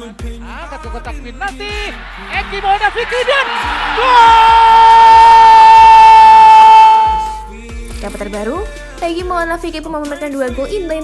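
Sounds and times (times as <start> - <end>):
background music with steady beat: 0.0 - 11.0
commentator shouting: 0.7 - 7.5.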